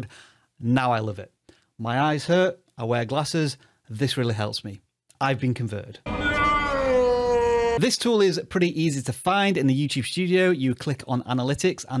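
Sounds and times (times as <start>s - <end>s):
man's long drawn-out shout: 6.1s - 7.8s.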